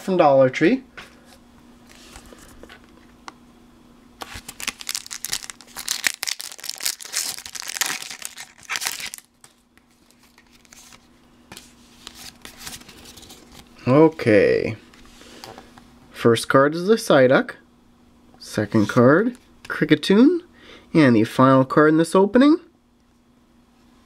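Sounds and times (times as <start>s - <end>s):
wrapper tearing and crinkling: 4.2s - 11.0s.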